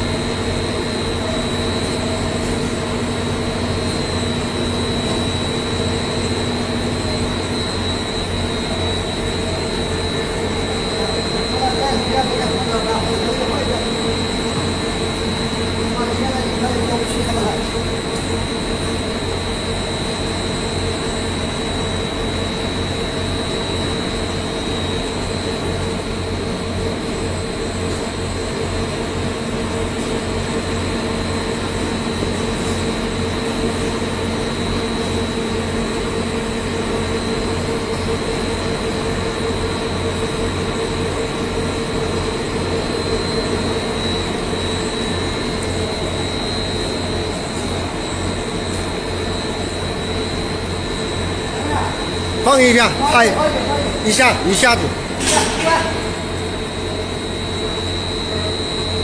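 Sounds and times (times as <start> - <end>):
high even whine: 0.0 - 59.0
machinery drone with hum: 0.0 - 59.0.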